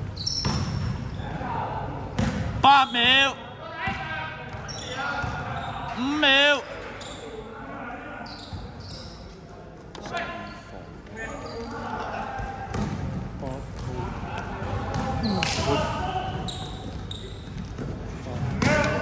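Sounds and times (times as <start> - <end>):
basketball bouncing on court: 0.4 - 1.0, 2.2 - 2.6, 3.8 - 5.5, 12.4 - 15.7
players' voices: 1.1 - 19.0.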